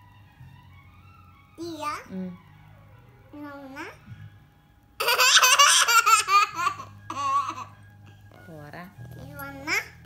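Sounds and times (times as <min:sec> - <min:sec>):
girl laughing loudly: 0:05.0 - 0:07.2.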